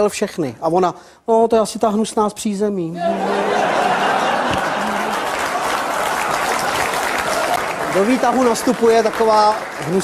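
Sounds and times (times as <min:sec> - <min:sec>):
audience laughter: 0:03.0 - 0:06.7
audience applauding: 0:03.2 - 0:10.0.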